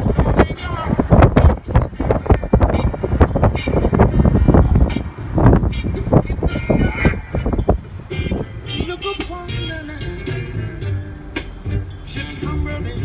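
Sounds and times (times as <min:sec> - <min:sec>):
wind buffeting microphone: 0:00.0 - 0:08.7
vehicle noise: 0:00.0 - 0:12.4.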